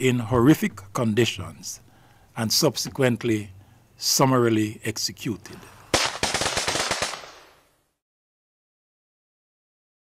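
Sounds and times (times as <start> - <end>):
rapid automatic gunfire: 5.9 - 7.5.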